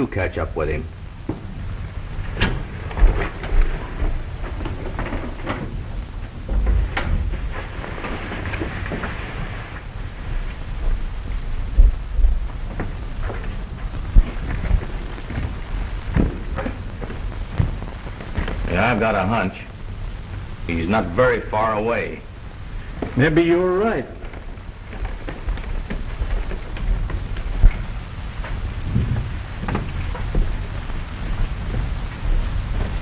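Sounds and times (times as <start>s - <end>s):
film soundtrack hiss and crackle: 0.0s - 33.0s
low thumps and knocks: 10.7s - 18.7s, 24.5s - 33.0s.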